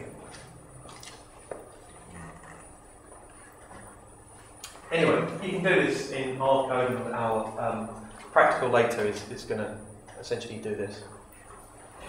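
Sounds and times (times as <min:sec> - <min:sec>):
faint low voice: 0:02.0 - 0:02.7.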